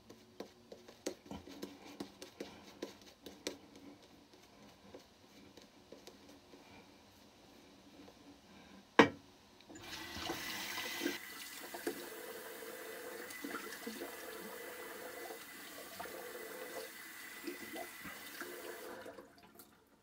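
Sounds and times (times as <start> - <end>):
sink tap running: 9.7 - 19.1.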